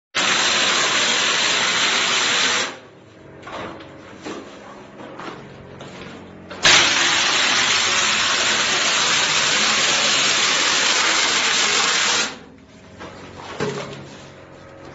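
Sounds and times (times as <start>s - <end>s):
mortar spray gun hissing: 6.6s - 12.4s.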